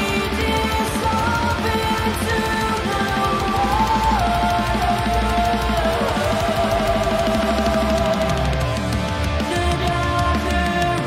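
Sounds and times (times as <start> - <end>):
heavy metal song: 0.0 - 11.0.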